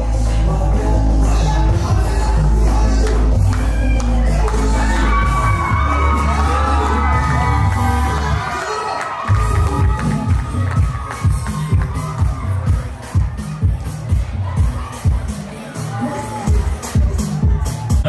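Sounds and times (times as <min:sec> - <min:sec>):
crowd cheering and calling out: 0:00.0 - 0:18.0
music with heavy bass: 0:00.0 - 0:18.0.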